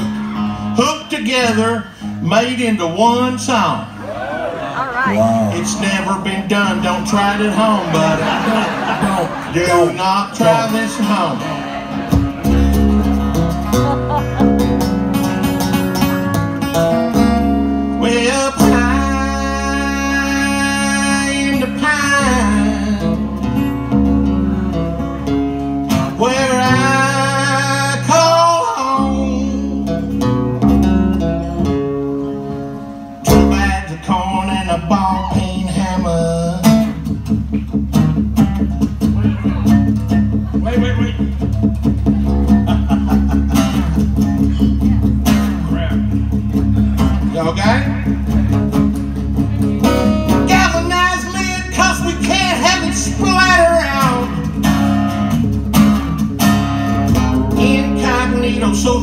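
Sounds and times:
acoustic guitars strumming: 0:00.0 - 0:59.0.

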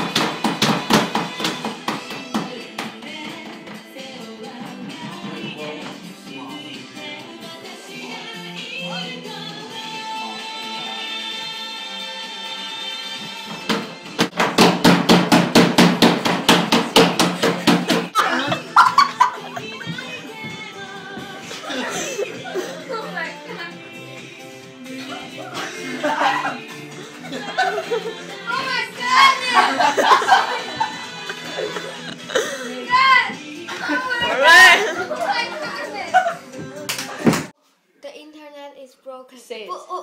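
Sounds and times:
fast banging on door: 0:13.7 - 0:18.1
boys yelling and shouting: 0:25.9 - 0:26.6, 0:28.4 - 0:30.2, 0:32.6 - 0:36.4.

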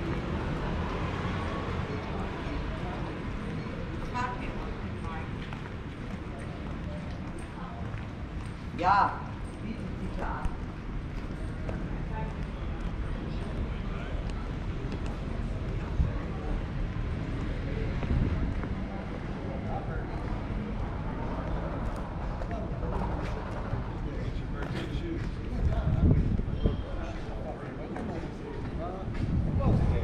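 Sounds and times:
passers-by's voices: 0:00.0 - 0:30.0.

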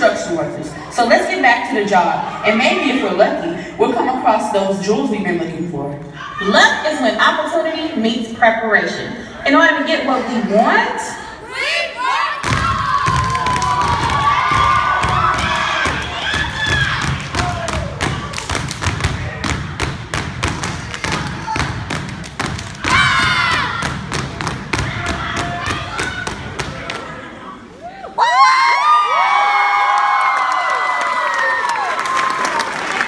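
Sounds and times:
audience cheering and shouting: 0:11.4 - 0:18.6, 0:22.8 - 0:24.1, 0:24.7 - 0:33.0
hands clapping rhythmically: 0:13.1 - 0:27.1.

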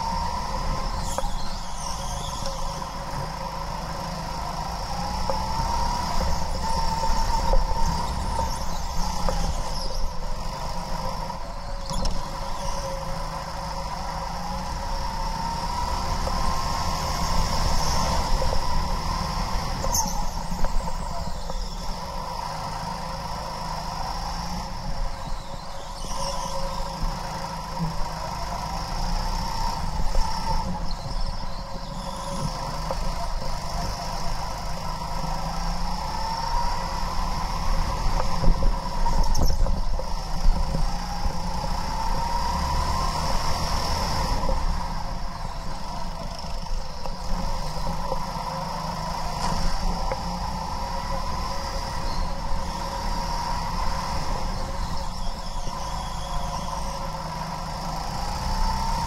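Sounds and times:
go-kart motor whining: 0:00.0 - 0:59.0.

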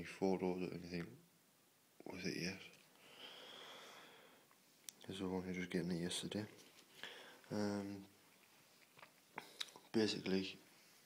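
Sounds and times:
faint breath: 0:03.0 - 0:04.6, 0:06.9 - 0:07.5.

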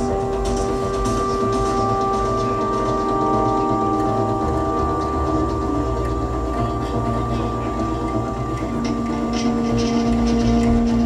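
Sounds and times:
low rumble: 0:00.0 - 0:11.0
sustained electronic drone tones: 0:00.0 - 0:11.0.

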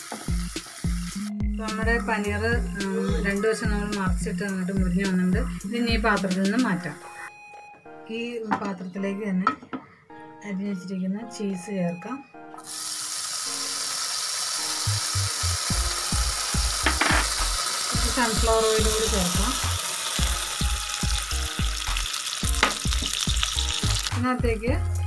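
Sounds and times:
food sizzling in hot oil: 0:00.0 - 0:06.8, 0:12.6 - 0:24.3.

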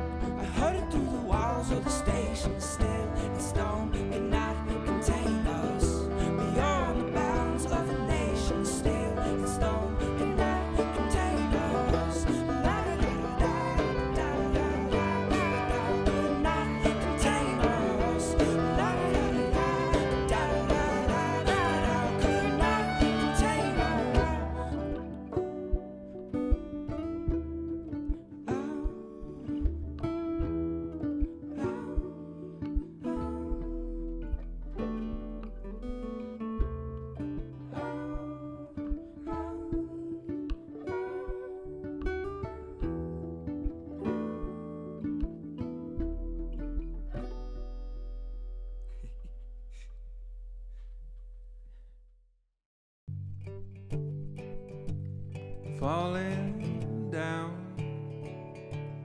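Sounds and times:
sustained band notes: 0:00.0 - 0:28.2
strummed acoustic guitar: 0:00.0 - 0:49.9, 0:53.1 - 0:59.0.

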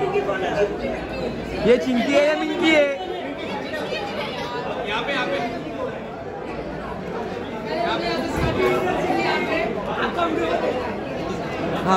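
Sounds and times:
people chattering in echoing room: 0:00.0 - 0:11.9.

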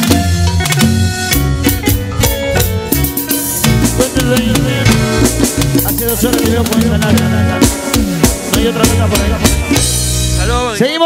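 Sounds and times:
live band playing: 0:00.0 - 0:11.0
man talking over microphone: 0:08.5 - 0:09.6, 0:10.3 - 0:11.0.

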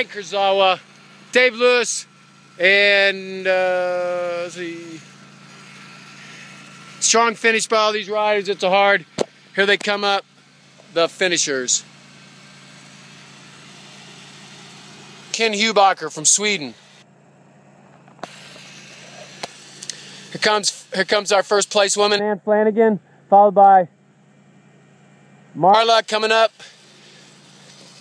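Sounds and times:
weak hiss: 0:18.2 - 0:21.3.

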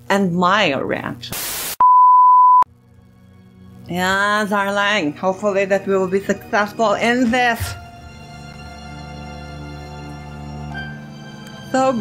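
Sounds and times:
high pure test tone beep: 0:01.8 - 0:02.7.

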